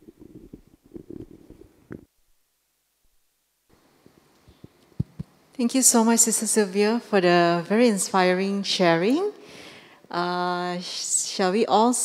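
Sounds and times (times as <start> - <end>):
microphone handling bumps: 0.0 - 2.1, 4.5 - 5.3.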